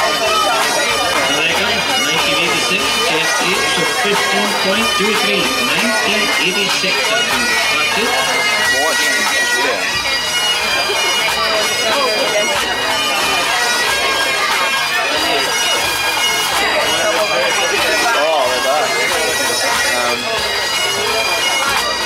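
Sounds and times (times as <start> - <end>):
bagpipe drones: 0.0 - 22.0
bagpipes playing: 0.0 - 22.0.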